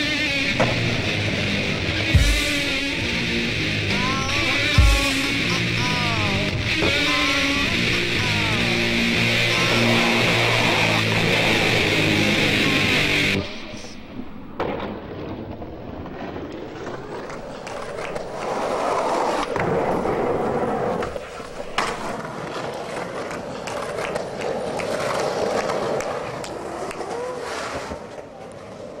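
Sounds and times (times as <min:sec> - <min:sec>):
skateboard clacks: 0:00.0 - 0:01.3, 0:04.2 - 0:13.2, 0:14.1 - 0:29.0
skateboard wheels rolling on pavement: 0:00.0 - 0:29.0.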